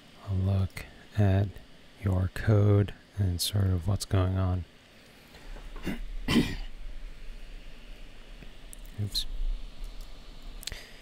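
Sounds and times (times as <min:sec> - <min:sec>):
man coughing: 0:05.8 - 0:06.7.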